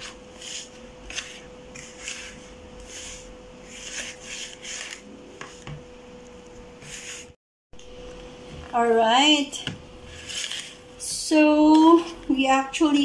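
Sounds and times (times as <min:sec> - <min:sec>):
whisk scraping in a bowl: 0:00.0 - 0:05.6, 0:10.0 - 0:10.9.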